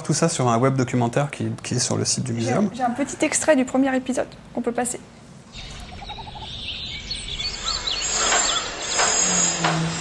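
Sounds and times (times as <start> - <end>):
birds chirping: 5.5 - 9.6.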